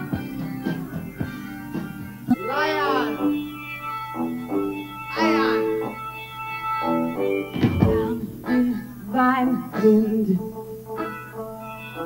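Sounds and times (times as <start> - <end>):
live rock band playing: 0.0 - 12.0
wailing bending note: 2.3 - 8.8.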